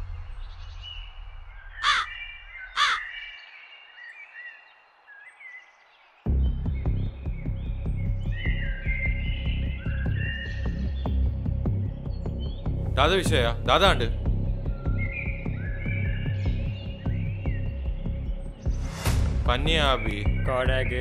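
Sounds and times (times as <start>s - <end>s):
small birds chirping: 0.0s - 21.0s
crow cawing: 1.8s - 3.3s
low background music: 6.3s - 21.0s
music with steady low beat: 6.3s - 21.0s.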